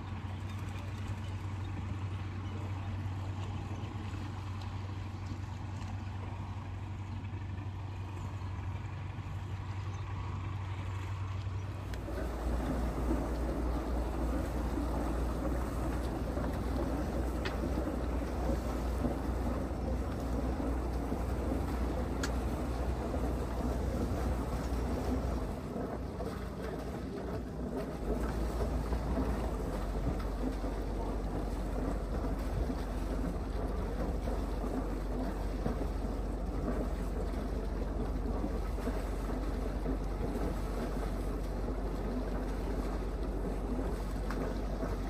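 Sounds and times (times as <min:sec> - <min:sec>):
boat engine rumble: 0:00.0 - 0:45.0
water noise: 0:00.0 - 0:45.0.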